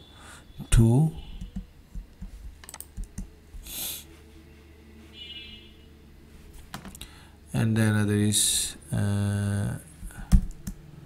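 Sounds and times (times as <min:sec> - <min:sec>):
computer keyboard keys clicking: 0:01.4 - 0:03.3.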